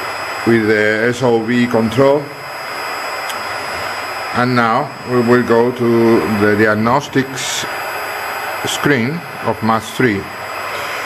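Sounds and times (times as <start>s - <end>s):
cooling fan rushing hiss: 0.0s - 11.0s
high steady whine: 0.0s - 11.0s.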